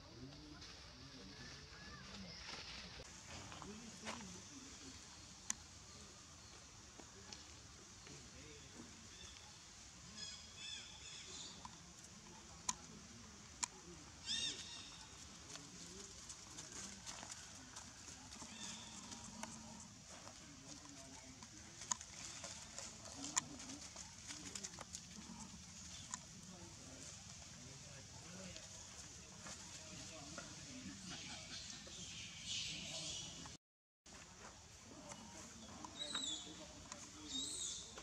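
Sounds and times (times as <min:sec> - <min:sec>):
faint outdoor background: 0:00.0 - 0:38.0.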